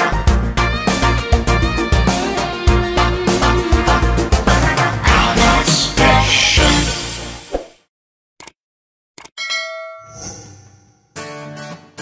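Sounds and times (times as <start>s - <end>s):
bell ding: 9.4s - 11.2s.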